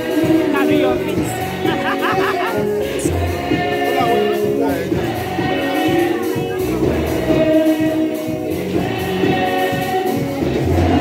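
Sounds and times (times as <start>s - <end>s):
gospel choir singing: 0.0s - 11.0s.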